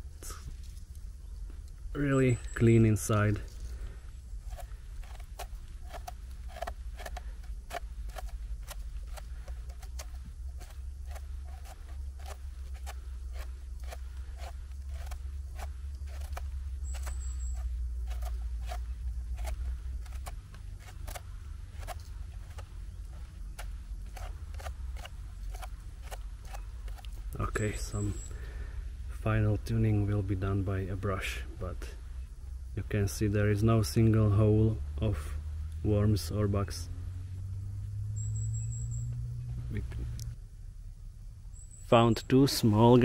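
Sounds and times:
low rumble: 0.0s - 41.8s
knife scraping mushroom stem: 4.4s - 27.2s.

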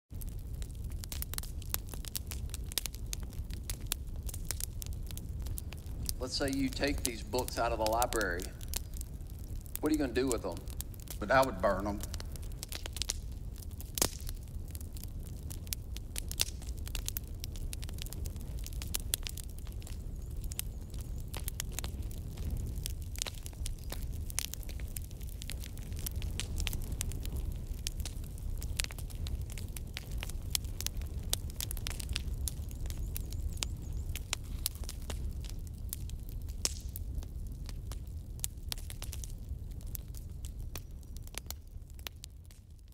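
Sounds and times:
fire crackling and popping: 0.1s - 42.9s.

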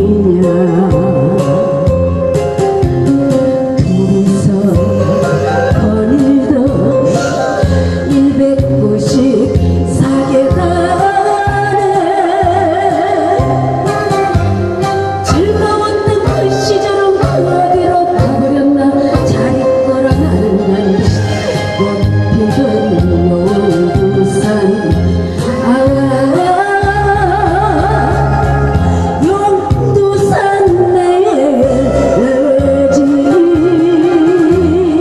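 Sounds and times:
amplified accompaniment with bass beat: 0.0s - 35.0s
woman singing into a microphone: 0.0s - 35.0s.

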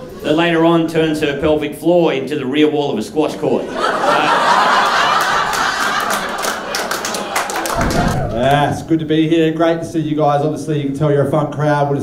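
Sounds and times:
audience applauding: 4.1s - 8.8s.

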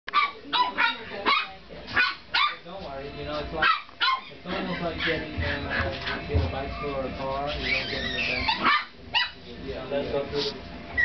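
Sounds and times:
puppies yapping: 3.6s - 6.2s, 6.8s - 9.4s.

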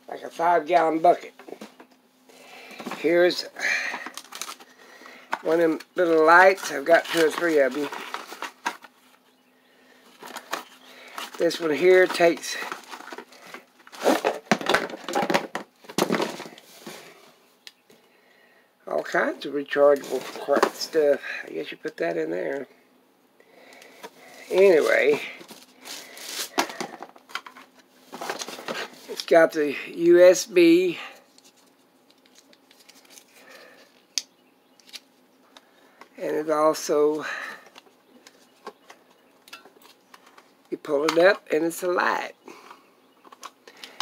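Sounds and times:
cable handling against plastic: 2.7s - 9.3s, 10.0s - 17.1s, 19.9s - 21.2s, 23.7s - 29.4s, 31.2s - 36.1s, 37.1s - 41.5s, 43.2s - 44.0s
packaging crinkling and rustling: 3.8s - 9.3s, 10.1s - 17.2s, 24.0s - 29.4s, 31.3s - 34.0s.

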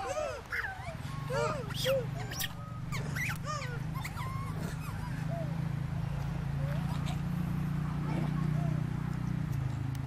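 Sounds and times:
infant monkeys crying: 0.0s - 5.8s.

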